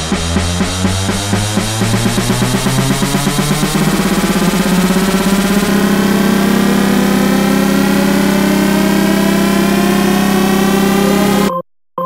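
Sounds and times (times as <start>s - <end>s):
tech house music build-up: 0.0s - 11.6s.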